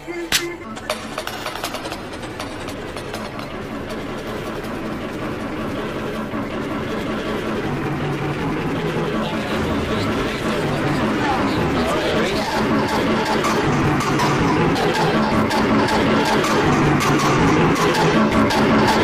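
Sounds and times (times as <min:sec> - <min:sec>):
overlapping video soundtracks: 0:00.0 - 0:19.0.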